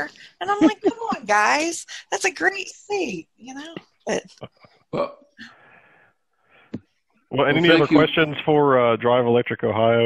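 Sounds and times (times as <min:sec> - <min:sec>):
person speaking over video call: 0:00.0 - 0:05.8, 0:07.3 - 0:10.0
breathy sound: 0:04.6 - 0:06.8.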